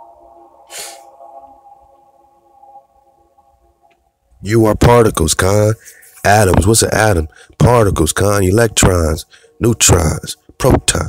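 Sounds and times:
soft sustained music chord: 0:00.0 - 0:11.0.

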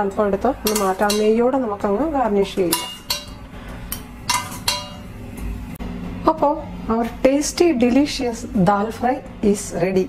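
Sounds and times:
metal ladle clinking on pan: 0:00.6 - 0:01.4, 0:02.7 - 0:03.4, 0:04.3 - 0:05.1.

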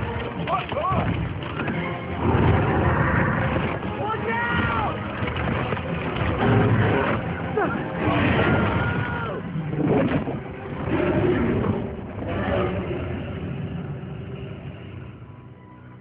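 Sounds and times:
dinosaur roaring: 0:01.7 - 0:03.9, 0:06.2 - 0:15.0.

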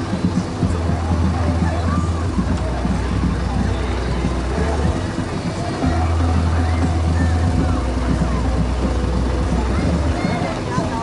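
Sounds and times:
parade cars rumbling: 0:00.0 - 0:11.0
people talking: 0:00.0 - 0:11.0.

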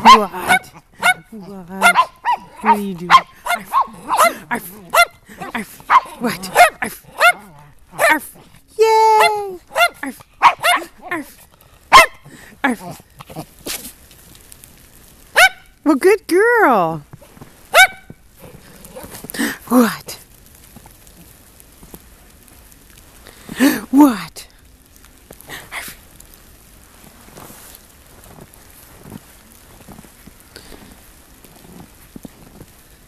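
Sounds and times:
dog barking sharply: 0:00.0 - 0:08.2, 0:09.7 - 0:11.0, 0:11.9 - 0:12.2, 0:15.4 - 0:15.7, 0:17.7 - 0:18.1
steady hiss: 0:00.0 - 0:33.0
footsteps crunching in snow: 0:17.0 - 0:19.4, 0:26.4 - 0:33.0.

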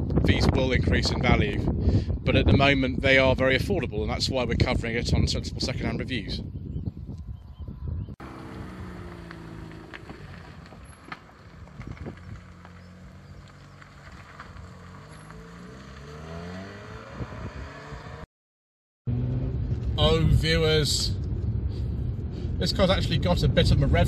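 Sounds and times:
rotary engine accelerating: 0:07.7 - 0:18.3, 0:19.1 - 0:20.0.

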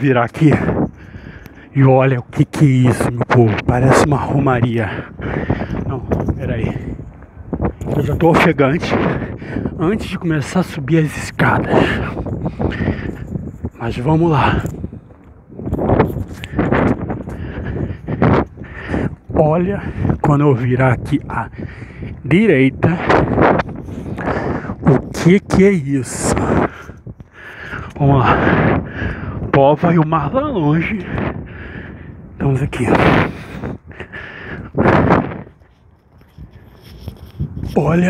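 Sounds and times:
wind on microphone: 0:00.0 - 0:38.0
man breathing heavily: 0:00.6 - 0:01.8, 0:04.8 - 0:05.9, 0:09.0 - 0:09.8, 0:11.6 - 0:13.8, 0:15.9 - 0:20.2, 0:21.5 - 0:22.3, 0:23.2 - 0:24.9, 0:26.4 - 0:29.5, 0:31.0 - 0:32.4, 0:33.1 - 0:37.4.

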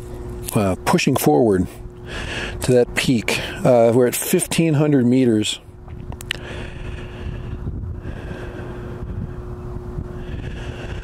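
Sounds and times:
wind buffeting microphone: 0:05.8 - 0:11.0.

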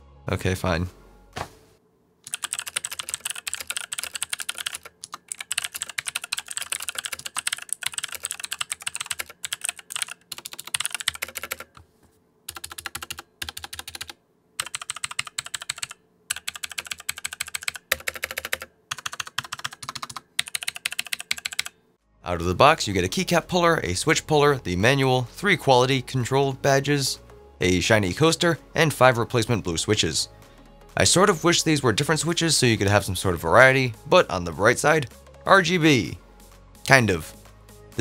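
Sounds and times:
fast typing on mechanical keyboard: 0:02.3 - 0:11.8, 0:12.5 - 0:21.7.

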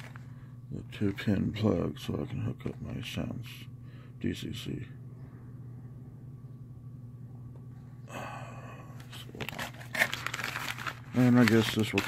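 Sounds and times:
paper rustling and crinkling: 0:00.0 - 0:00.2, 0:09.0 - 0:12.0
low background hum: 0:00.0 - 0:12.0.

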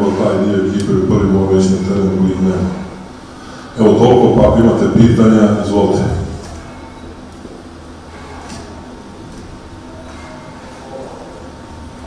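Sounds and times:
faint room noise: 0:00.0 - 0:12.0
steady low hum: 0:00.0 - 0:12.0.

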